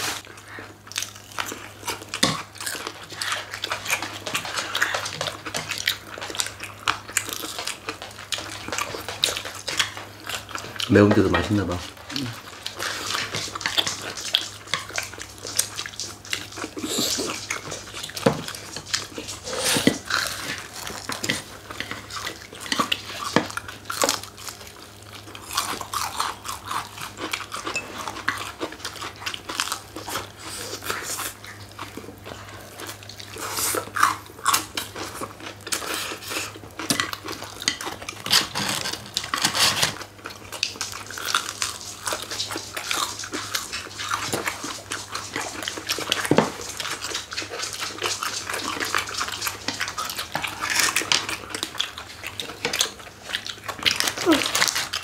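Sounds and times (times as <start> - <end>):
chewing and lip-smacking: 0.0 - 55.0.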